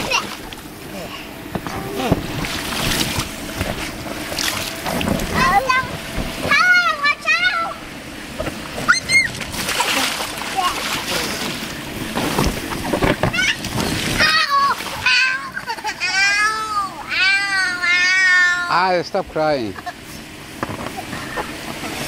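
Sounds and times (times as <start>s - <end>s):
water splashing in pool: 1.6s - 18.7s
young child crying: 14.2s - 18.8s.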